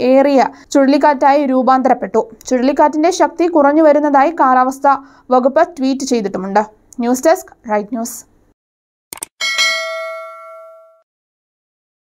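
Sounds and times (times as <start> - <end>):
bright bell chime: 9.4 - 11.0.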